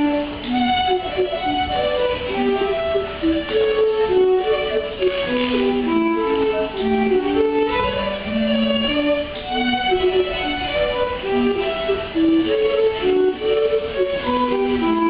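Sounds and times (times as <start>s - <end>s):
fiddle melody: 0.0s - 15.0s.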